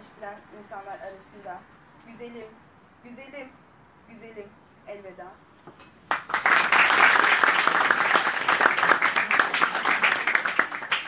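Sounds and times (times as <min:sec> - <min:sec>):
audience applauding: 0:06.1 - 0:11.0.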